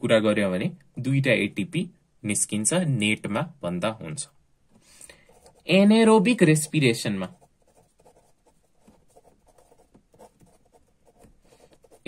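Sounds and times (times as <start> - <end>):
pen scratching on paper: 5.3 - 12.0.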